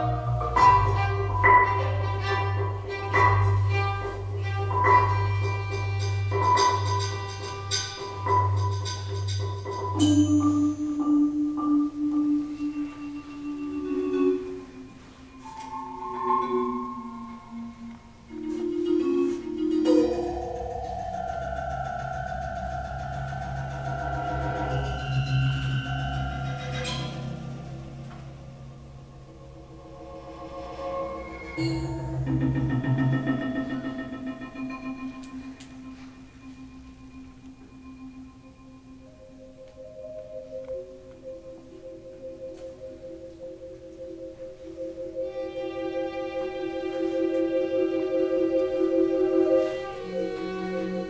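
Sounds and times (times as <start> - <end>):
held electronic chord: 0.0 - 51.0
rapid marimba strokes: 0.0 - 51.0
low electronic drone: 2.4 - 51.0.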